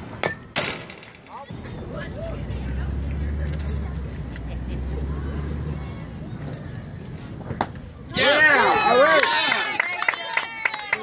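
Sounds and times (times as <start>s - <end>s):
faint voices: 1.3s - 9.1s
low steady engine hum: 1.4s - 8.2s.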